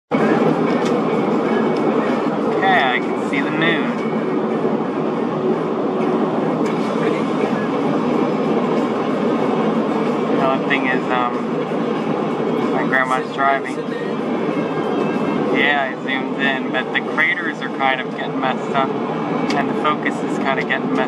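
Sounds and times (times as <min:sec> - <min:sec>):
road and tyre noise in car: 0:00.1 - 0:21.0
person speaking: 0:12.7 - 0:14.2.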